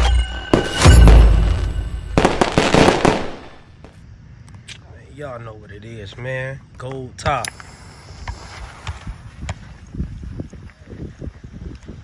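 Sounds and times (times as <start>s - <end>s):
fireworks popping: 0.6s - 4.0s.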